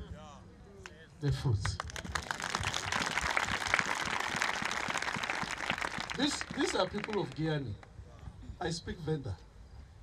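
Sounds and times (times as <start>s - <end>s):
crowd applauding: 1.8s - 7.5s.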